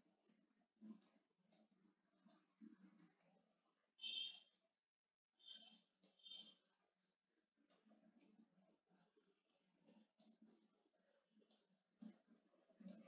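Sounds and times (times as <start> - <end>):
faint clicks from writing: 0.1 - 3.4, 5.5 - 6.6, 7.6 - 8.4, 9.8 - 10.8, 11.4 - 13.0.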